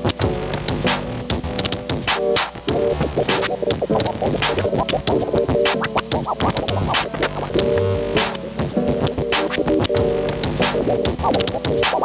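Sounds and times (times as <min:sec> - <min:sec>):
music beat: 0:00.0 - 0:12.0
turntable scratching: 0:00.0 - 0:12.0.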